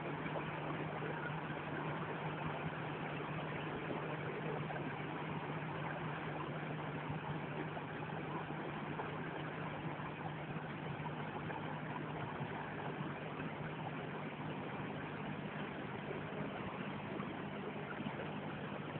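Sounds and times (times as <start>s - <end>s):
low hum: 0.0s - 18.9s.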